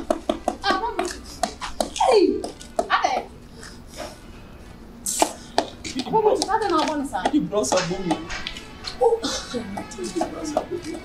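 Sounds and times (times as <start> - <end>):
short sharp hiss: 5.0 - 5.5
person talking: 9.0 - 11.0.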